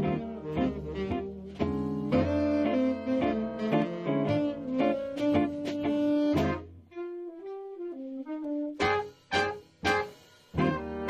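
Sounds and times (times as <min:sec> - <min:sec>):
solo horn melody: 0:00.0 - 0:11.0
swing jazz band playing: 0:00.0 - 0:11.0.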